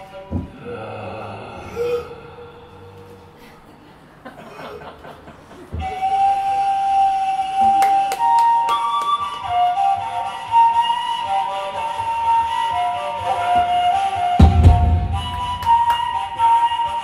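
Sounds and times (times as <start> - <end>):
flute playing long notes: 0.0 - 3.3, 5.8 - 17.0.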